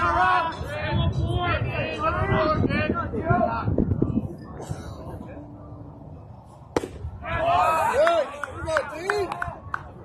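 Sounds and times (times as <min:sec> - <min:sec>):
baseball bat crack: 0:06.7 - 0:07.2
crowd yelling and cheering: 0:07.2 - 0:09.9.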